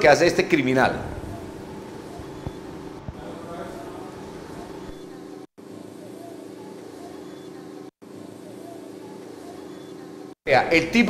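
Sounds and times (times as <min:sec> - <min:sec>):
faint voices: 0:01.0 - 0:05.5.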